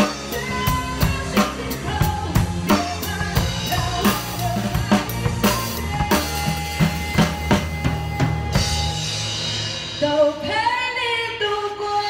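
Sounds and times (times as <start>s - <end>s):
person singing: 0.0s - 9.0s.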